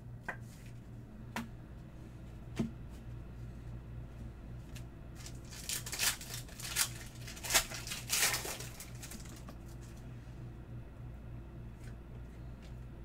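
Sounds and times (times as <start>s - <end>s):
low steady hum: 0.0s - 13.0s
foil wrapper crinkling: 5.2s - 10.0s.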